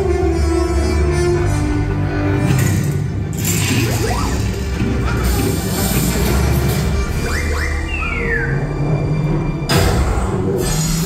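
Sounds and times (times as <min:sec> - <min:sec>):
amusement ride background music: 0:00.0 - 0:11.0.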